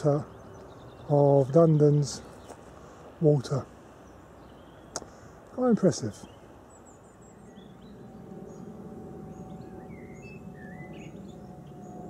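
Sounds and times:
low outdoor background noise: 0.0s - 12.0s
small birds chirping faintly: 0.0s - 12.0s.

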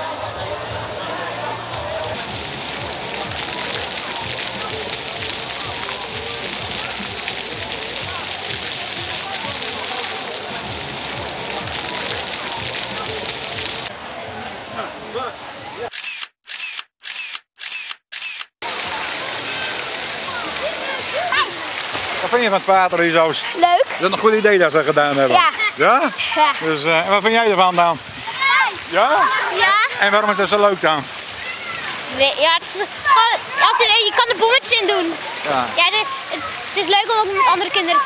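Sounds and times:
fountain water splashing: 0.0s - 16.1s, 18.2s - 38.0s
crowd chatter: 0.0s - 38.0s.

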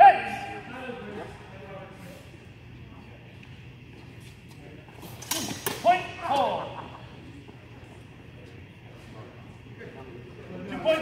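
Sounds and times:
people shouting: 0.0s - 0.7s.

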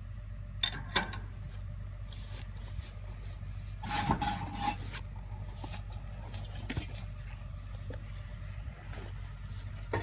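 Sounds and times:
steady low hum: 0.0s - 10.0s
metal scraping rub: 3.6s - 5.9s.

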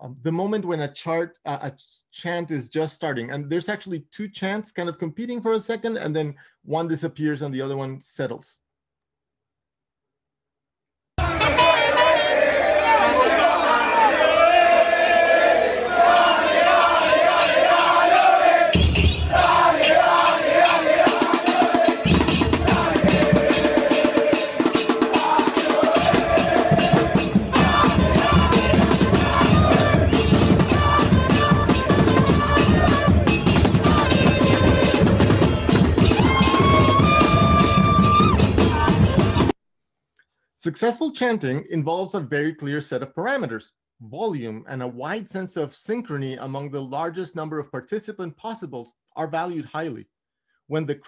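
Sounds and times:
male voices chanting: 11.2s - 35.5s
trumpets and trombone: 11.2s - 39.5s
bass drums and snare drums: 16.1s - 39.6s.

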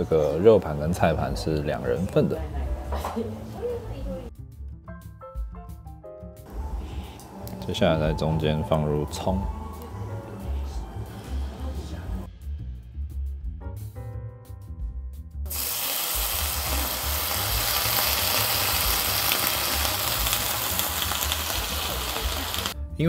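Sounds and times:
background music: 0.0s - 23.0s
sauce sizzling in hot pot: 15.5s - 22.8s.

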